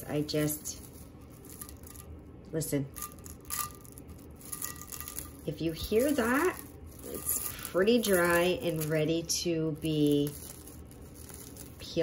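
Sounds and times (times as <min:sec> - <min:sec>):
plastic wrap crinkling: 0:00.0 - 0:02.3, 0:02.9 - 0:12.0.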